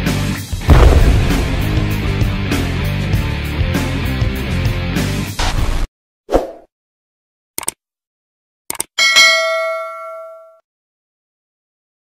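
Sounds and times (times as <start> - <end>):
short low thump: 0.7 - 2.8
quick clicks: 7.6 - 7.8, 8.7 - 9.0
notification bell ding: 9.0 - 10.6.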